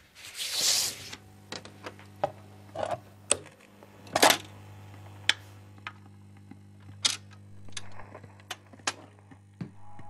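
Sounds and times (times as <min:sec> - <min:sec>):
steady low hum: 0:01.0 - 0:10.0.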